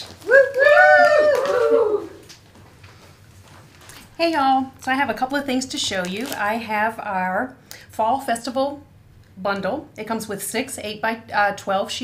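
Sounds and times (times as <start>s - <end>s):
woman cheering woo: 0.2s - 2.3s.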